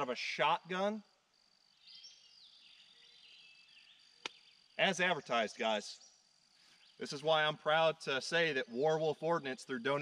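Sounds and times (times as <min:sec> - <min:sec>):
high insect drone: 0:00.0 - 0:07.5.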